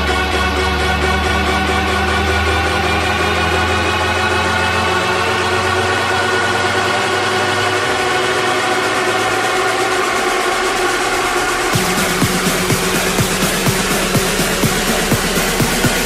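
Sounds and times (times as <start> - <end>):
deep bass drone: 0.0 - 16.0
held synth chord: 0.0 - 16.0.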